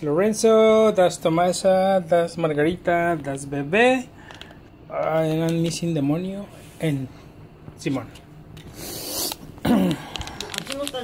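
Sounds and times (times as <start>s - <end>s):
plastic packet crinkling: 9.9s - 11.0s.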